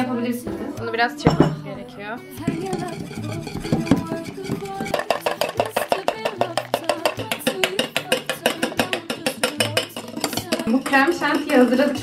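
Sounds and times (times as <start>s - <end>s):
background music: 0.0s - 12.0s
whisk clicking against glass bowl: 2.4s - 12.0s.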